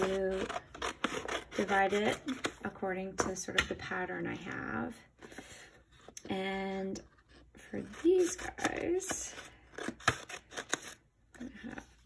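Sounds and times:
scissors cutting paper: 0:00.0 - 0:02.6, 0:07.8 - 0:11.5.

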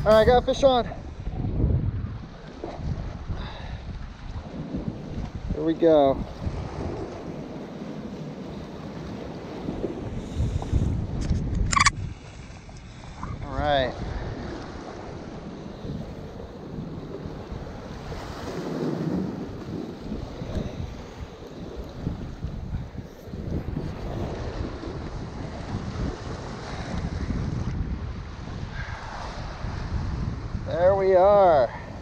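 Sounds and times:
wind buffeting microphone: 0:00.0 - 0:32.0
surf breaking against rocks: 0:16.8 - 0:22.7.

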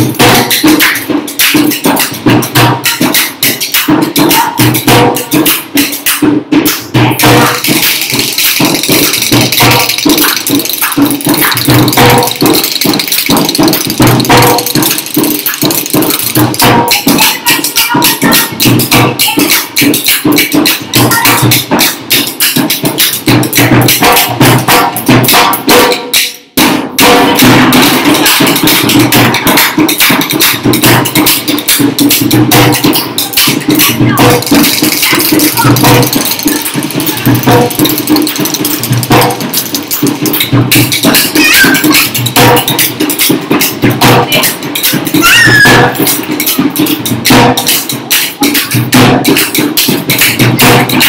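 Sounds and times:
barrel drum played fast: 0:00.0 - 0:51.0
clappers clacking rapidly: 0:00.0 - 0:51.0.

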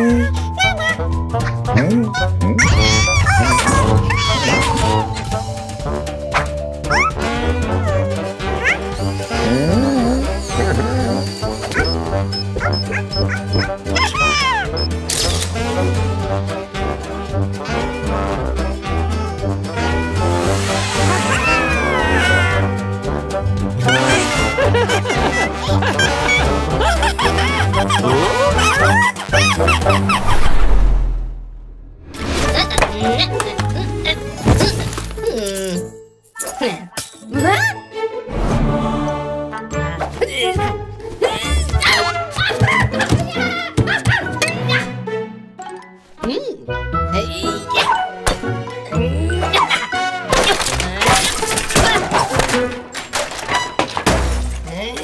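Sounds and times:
cartoon background music: 0:00.0 - 0:30.8, 0:32.1 - 0:55.0
wordless animal-like vocal sounds: 0:08.0 - 0:11.3.

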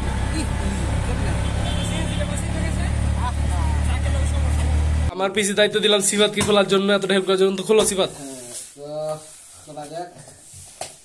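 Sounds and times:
auto-rickshaw engine drone: 0:00.0 - 0:05.1
road noise: 0:00.0 - 0:05.2.

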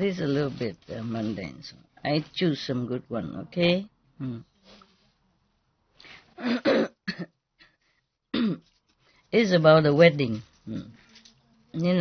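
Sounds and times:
woman clearing her throat: 0:06.4 - 0:07.4, 0:08.3 - 0:08.7
woman coughing: 0:06.4 - 0:07.4, 0:08.3 - 0:08.7.

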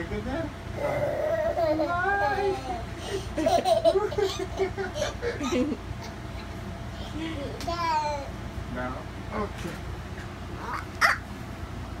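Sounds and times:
toddler squealing: 0:10.6 - 0:11.3.

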